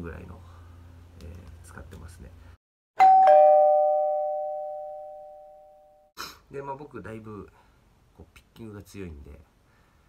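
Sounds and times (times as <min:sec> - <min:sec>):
two-note ding-dong chime: 0:03.0 - 0:06.1.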